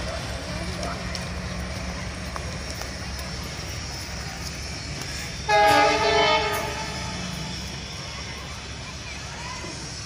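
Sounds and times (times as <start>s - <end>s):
locomotive horn blast: 5.4s - 7.4s.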